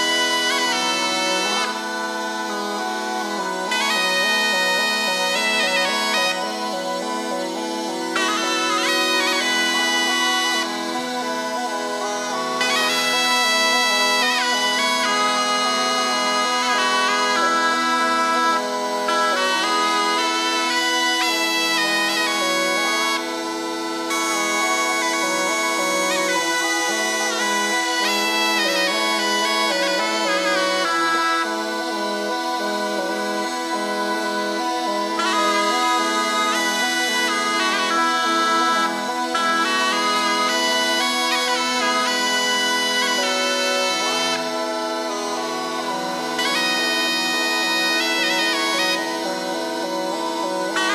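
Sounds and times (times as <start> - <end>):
bagpipes playing folk tune: 0.0 - 50.9.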